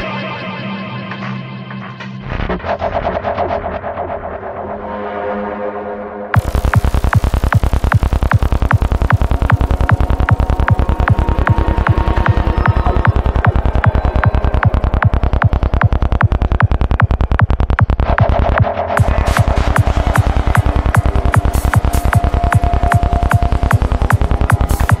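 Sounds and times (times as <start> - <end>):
psytrance dance music: 6.4 - 25.0.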